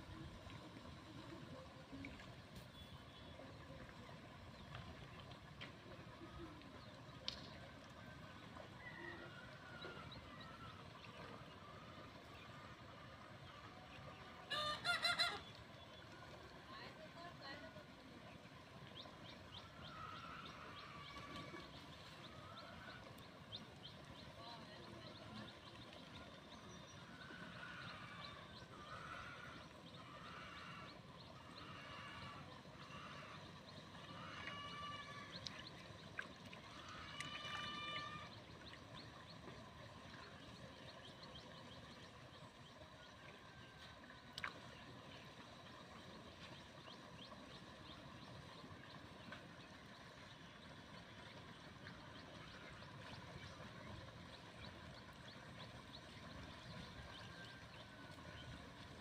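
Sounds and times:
waterfowl calling: 14.5 - 15.7, 27.0 - 38.7.

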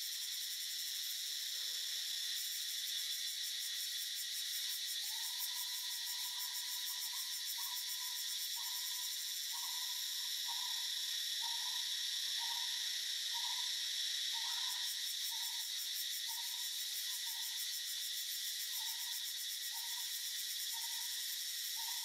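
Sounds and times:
high-pitched insect chorus: 0.0 - 22.0.

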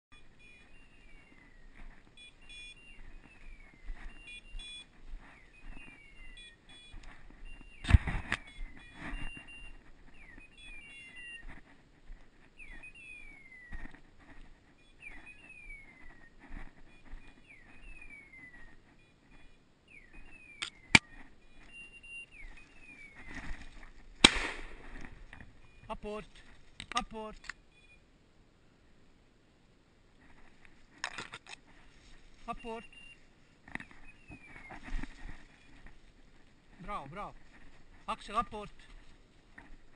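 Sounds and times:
short steady beeps: 0.1 - 11.6, 14.7 - 23.3, 27.3 - 28.0
footsteps through undergrowth: 0.2 - 26.8, 30.2 - 39.9
sharp cracks: 24.2 - 25.1.

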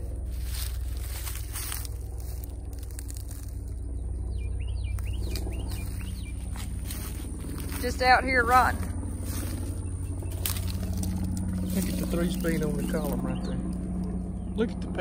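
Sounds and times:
footsteps through leaf litter: 0.0 - 3.8, 4.9 - 13.2
steady low hum: 0.0 - 15.0
faint bird chirps: 4.3 - 7.1.

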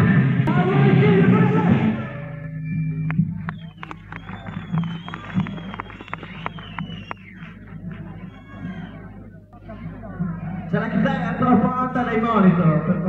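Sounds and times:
low amplifier hum: 0.0 - 13.0
high whistle: 2.1 - 7.6, 8.2 - 9.2
audience handclaps: 3.1 - 8.9.

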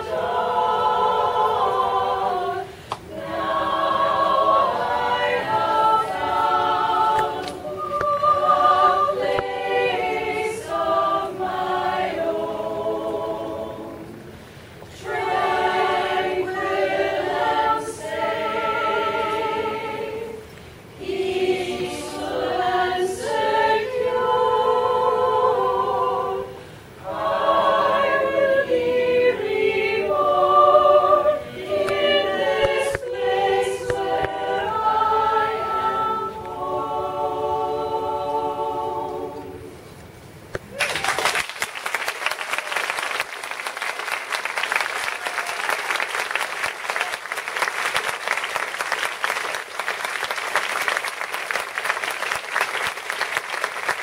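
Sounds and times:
women's choir singing: 0.0 - 39.9.

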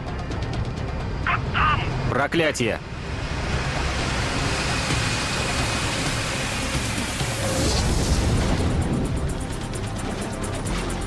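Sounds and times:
jet engines roaring: 0.6 - 11.0
deep rumble: 2.8 - 11.0.

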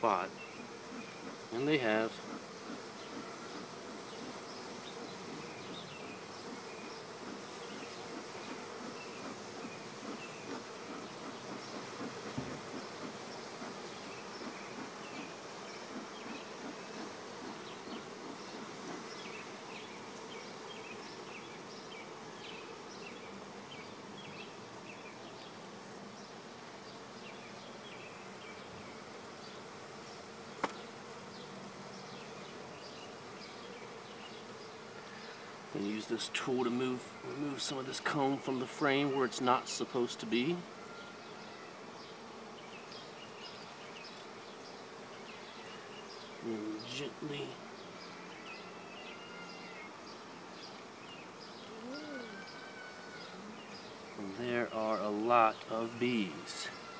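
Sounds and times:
honey bees buzzing: 0.0 - 56.9.

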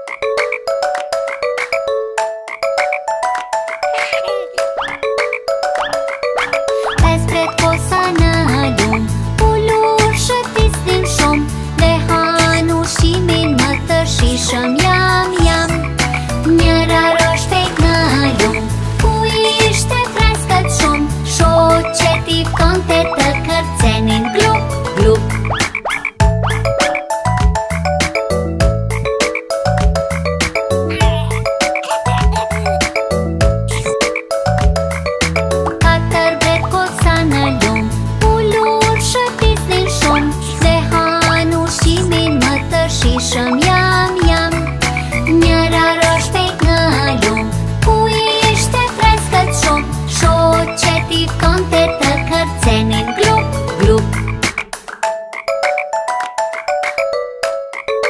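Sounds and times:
cartoon frog croaks: 0.0 - 0.8, 2.5 - 3.1, 3.7 - 7.7, 25.1 - 27.1, 30.7 - 34.3
bouncy children's song music: 0.0 - 58.0.

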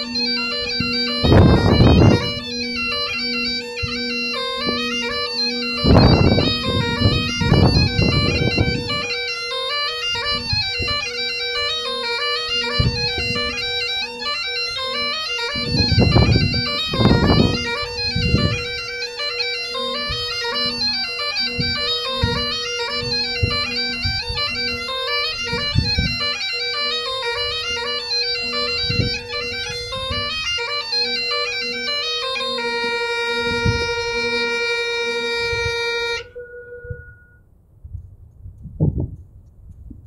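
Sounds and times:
bagpipes playing over drone: 0.0 - 37.5.

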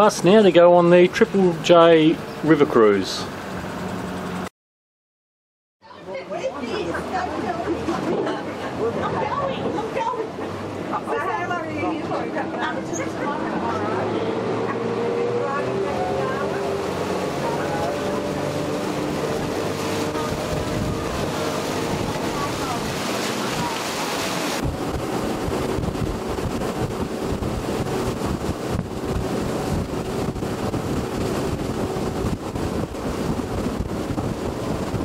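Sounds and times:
rushing water from boat wake: 0.0 - 4.5, 5.8 - 35.0
wind buffeting microphone: 6.4 - 35.0.

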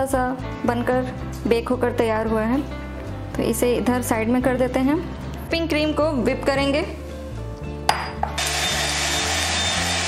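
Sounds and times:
glass bowl knock: 7.9 - 8.4
electric hand mixer whining: 8.4 - 10.0.

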